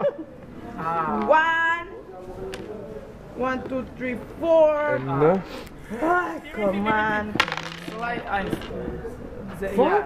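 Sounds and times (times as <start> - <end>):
dice clacking on wooden board: 7.3 - 8.8.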